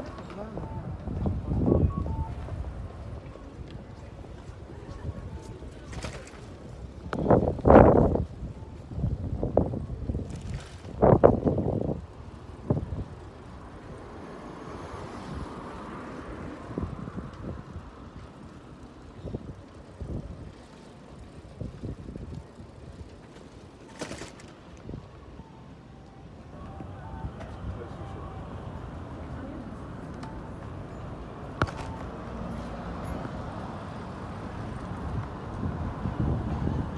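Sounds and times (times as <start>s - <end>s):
road traffic: 0.0s - 36.9s
wind bursts on microphone: 34.6s - 36.9s.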